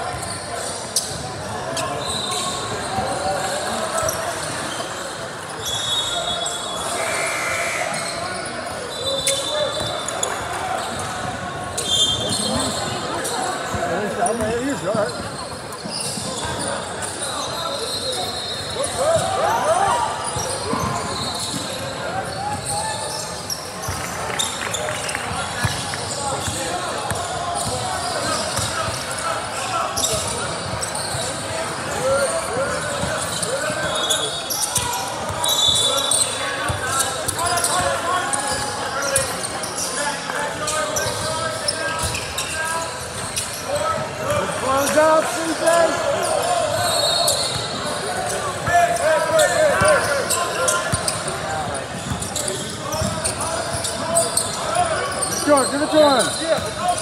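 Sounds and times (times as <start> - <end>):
sneakers squeaking: 0.0 - 57.0
basketball bouncing: 53.0 - 53.2.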